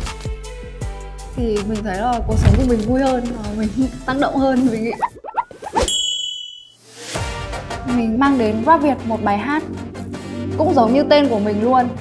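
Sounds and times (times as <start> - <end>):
background music: 0.0 - 5.9, 6.8 - 12.0
bright metallic ding: 5.8 - 6.8.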